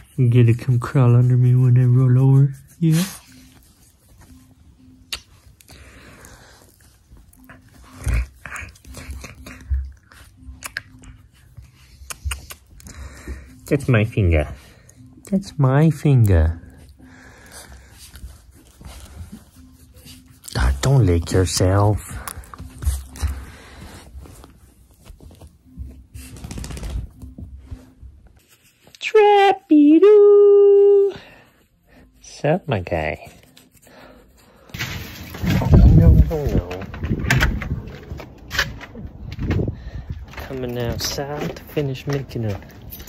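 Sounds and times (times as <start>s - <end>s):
dog breathing and mouth noises: 5.0s - 27.3s
blanket rustling: 17.6s - 29.0s.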